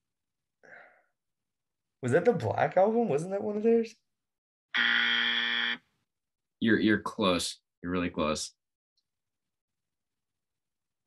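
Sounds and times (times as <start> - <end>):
wrong-answer buzzer: 4.7 - 5.8.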